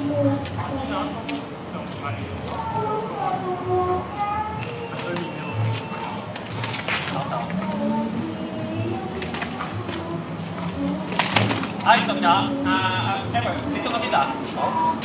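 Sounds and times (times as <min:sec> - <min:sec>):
background voices: 0:00.0 - 0:15.0.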